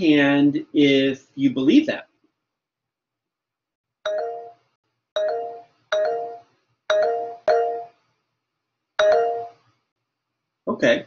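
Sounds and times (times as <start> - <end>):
notification chime: 4.1 - 4.6, 5.2 - 7.9, 9.0 - 9.6.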